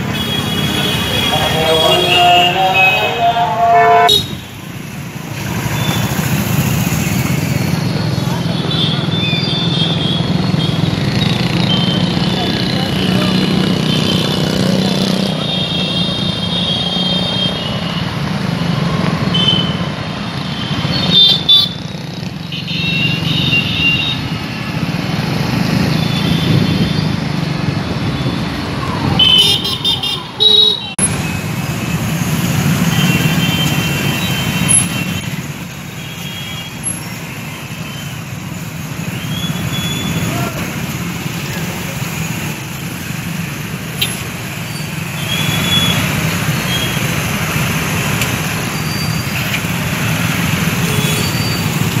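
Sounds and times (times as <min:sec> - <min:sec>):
vehicle horns honking: 0:00.0 - 0:04.6, 0:29.2 - 0:31.1
motorcycle and car engines: 0:00.0 - 0:52.0.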